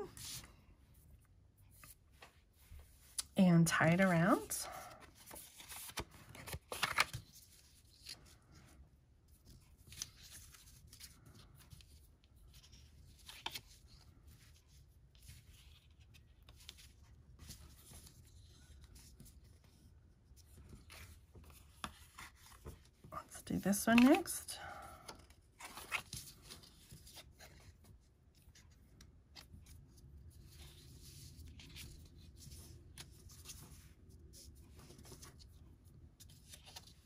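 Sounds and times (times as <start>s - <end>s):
cardstock and twine rustling: 4.0s - 35.6s.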